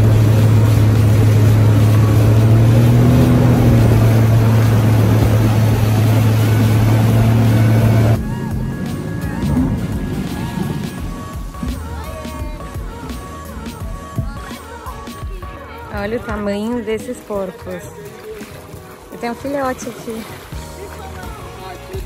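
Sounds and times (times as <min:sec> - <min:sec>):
motorboat engine running: 0:00.0 - 0:22.0
water and wind rushing: 0:00.0 - 0:22.0.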